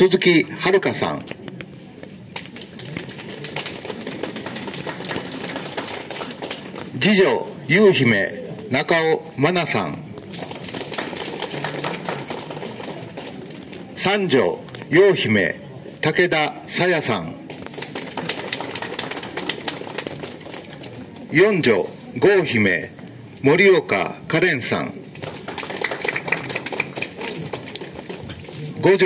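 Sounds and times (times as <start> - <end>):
rain pattering on umbrellas: 1.2 - 7.6, 10.1 - 14.9, 17.4 - 23.0, 25.1 - 29.0
small crowd clapping: 2.2 - 7.4, 10.3 - 14.5, 17.5 - 21.8, 25.2 - 29.0.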